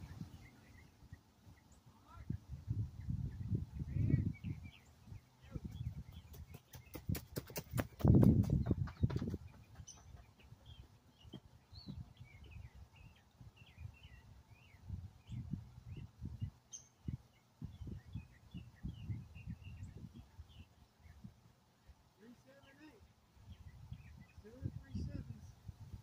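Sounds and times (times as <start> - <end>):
small birds chirping: 0.0 - 26.0.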